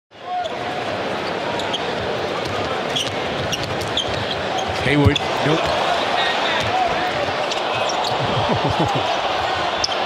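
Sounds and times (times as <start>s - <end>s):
arena crowd noise: 0.1s - 10.0s
sneakers squeaking on court: 1.2s - 5.8s.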